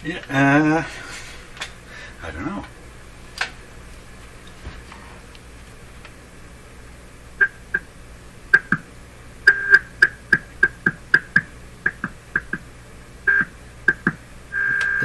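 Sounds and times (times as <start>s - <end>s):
radio test tone blips: 13.3s - 15.0s.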